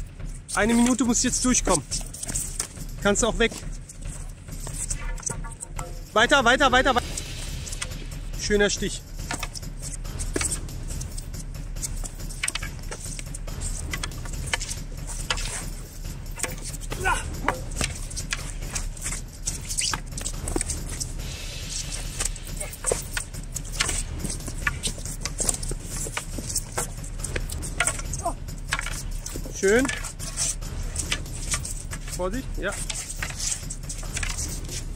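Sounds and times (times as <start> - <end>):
steady low rumble: 0.0 - 34.9
wooden poles clacking: 0.0 - 34.9.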